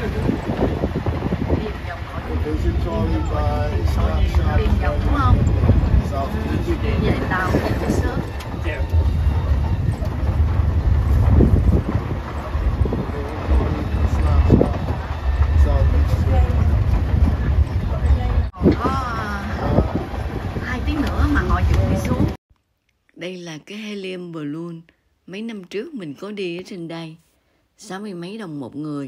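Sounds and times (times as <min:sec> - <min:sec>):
passengers talking: 0:00.0 - 0:22.4
tram rumble: 0:00.0 - 0:22.4
wind on microphone: 0:00.0 - 0:22.4.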